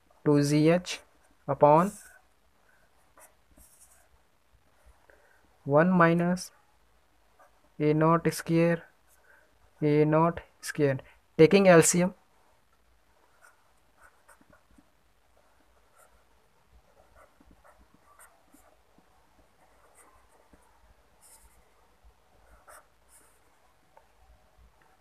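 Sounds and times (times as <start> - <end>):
pen scratching on paper: 3.0 - 4.1, 13.2 - 21.7, 22.3 - 23.8.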